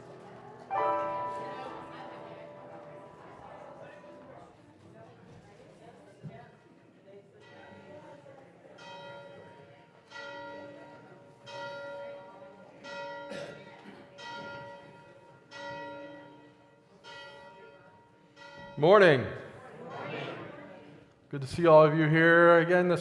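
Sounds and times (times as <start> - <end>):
bell ringing: 0.7 - 4.4.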